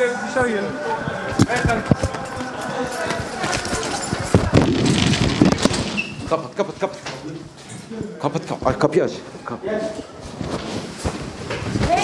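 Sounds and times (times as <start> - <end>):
man's voice: 0.0 - 4.9
indistinct men's voices: 0.0 - 5.5
hurried footsteps and scuffling: 0.2 - 8.0, 9.8 - 12.0.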